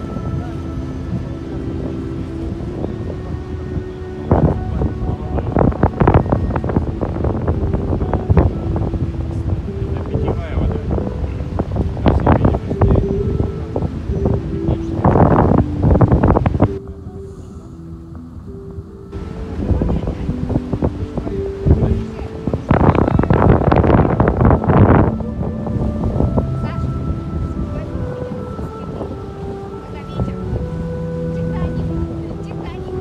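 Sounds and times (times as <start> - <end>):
low steady hum of tones: 0.0 - 33.0
wind buffeting microphone: 0.0 - 33.0.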